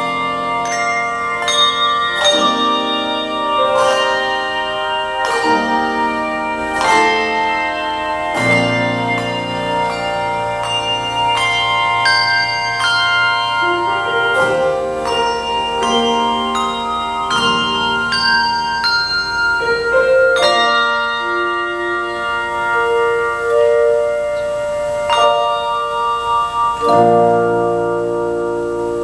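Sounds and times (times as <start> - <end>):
handbell choir ringing: 0.0 - 29.0.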